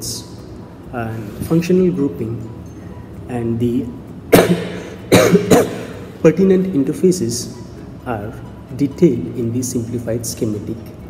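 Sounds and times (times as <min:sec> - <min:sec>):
man coughing: 0:04.3 - 0:06.2.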